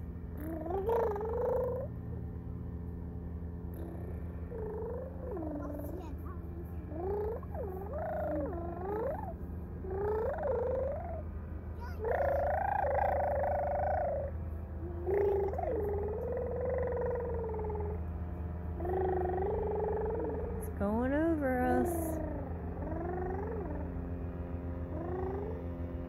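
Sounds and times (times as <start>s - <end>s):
steady low hum: 0.0s - 26.0s
toddler making high-pitched calls: 0.4s - 1.9s, 3.8s - 11.2s, 11.8s - 18.0s, 18.8s - 20.6s, 21.8s - 23.9s, 24.9s - 25.7s.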